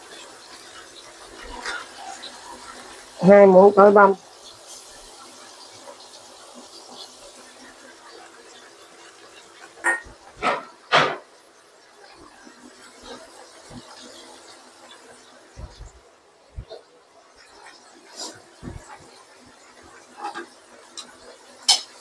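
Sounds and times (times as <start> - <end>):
food sizzling in oil: 0.0 - 22.0.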